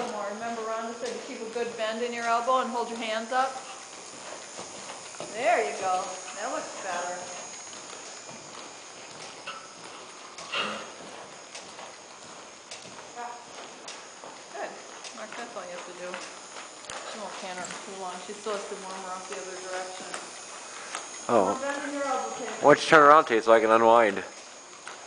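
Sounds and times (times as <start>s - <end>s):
horse hoofbeats on soft dirt: 0.0s - 25.0s.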